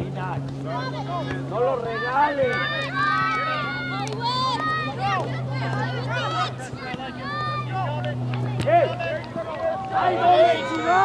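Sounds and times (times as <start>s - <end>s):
spectators talking and calling out: 0.0s - 11.0s.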